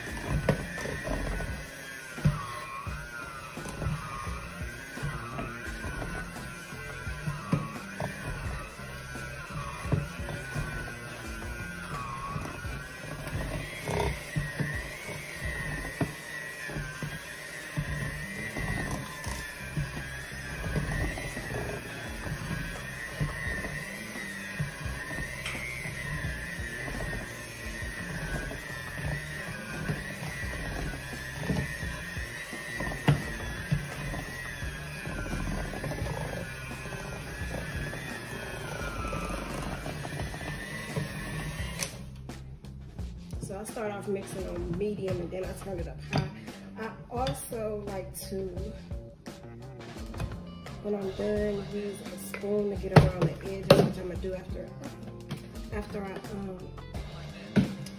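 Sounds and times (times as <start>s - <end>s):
hand mixer motor whine: 0.0s - 49.0s, 50.0s - 57.9s
beaters churning dough: 0.0s - 57.9s.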